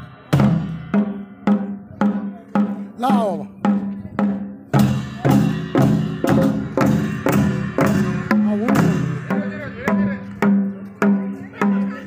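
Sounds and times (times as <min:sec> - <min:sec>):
drums beaten with sticks: 0:00.0 - 0:12.0.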